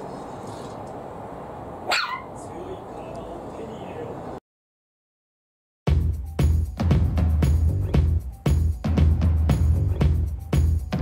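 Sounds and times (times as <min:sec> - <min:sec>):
puppy barking: 0:01.8 - 0:02.4.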